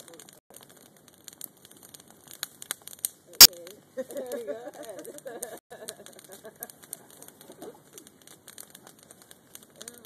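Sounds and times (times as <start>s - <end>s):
bonfire crackling and popping: 0.0s - 10.0s.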